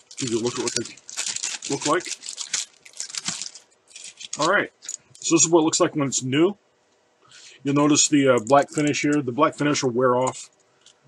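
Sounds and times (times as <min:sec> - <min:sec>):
plastic bag crinkling: 0:00.0 - 0:05.2.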